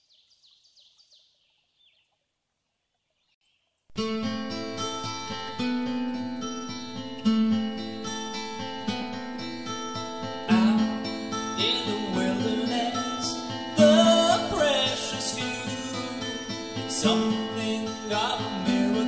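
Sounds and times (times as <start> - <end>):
acoustic guitar chords: 3.9 - 19.0.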